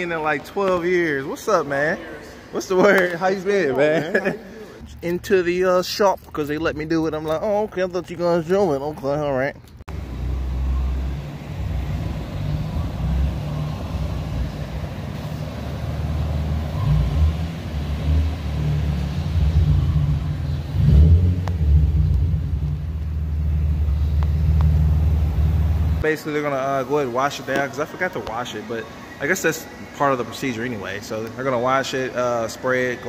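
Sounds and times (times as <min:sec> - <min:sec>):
car engine low rumble: 0:09.6 - 0:26.0.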